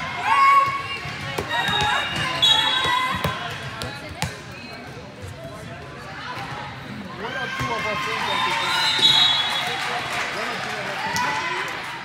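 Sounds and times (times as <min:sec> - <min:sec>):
volleyball bouncing on court: 0:00.4 - 0:05.0.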